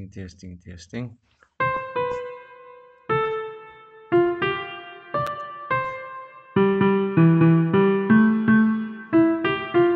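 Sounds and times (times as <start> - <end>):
piano-like synth notes: 1.6 - 9.9.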